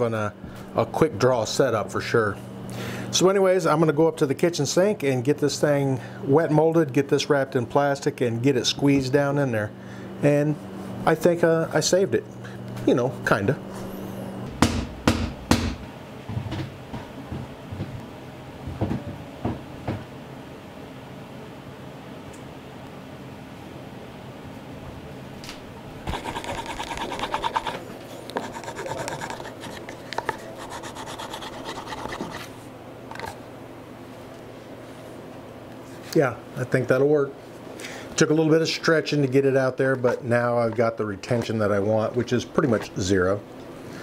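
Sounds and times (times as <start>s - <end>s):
rubbing on leather: 26.1s - 27.8s, 28.4s - 32.5s.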